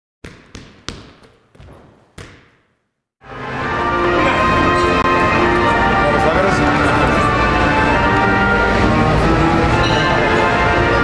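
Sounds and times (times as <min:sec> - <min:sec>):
basketball bouncing on hard floor: 0:00.2 - 0:02.8
music: 0:03.2 - 0:11.0.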